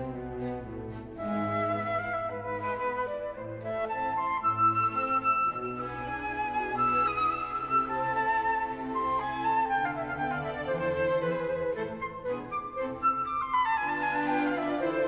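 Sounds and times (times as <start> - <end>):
flute melody: 0.0 - 15.0
soft string accompaniment: 0.0 - 15.0.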